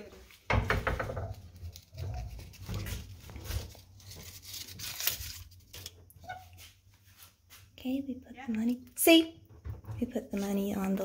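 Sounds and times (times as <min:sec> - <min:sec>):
plastic bag rustle: 0:01.6 - 0:06.1.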